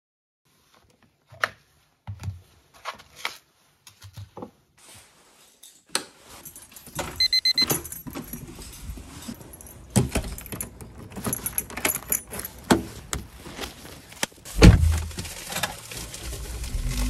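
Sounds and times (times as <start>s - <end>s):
keys jangling: 6.3s - 13.1s
rapid high electronic beeps: 7.2s - 7.6s.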